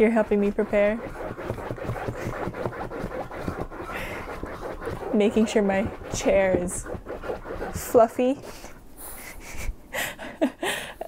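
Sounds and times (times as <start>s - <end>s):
dog scratching fabric cushion: 0.0s - 8.8s.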